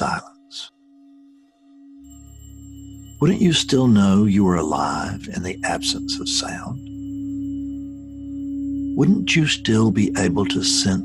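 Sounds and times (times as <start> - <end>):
held tone: 1.1 - 11.0
low hum: 2.1 - 11.0.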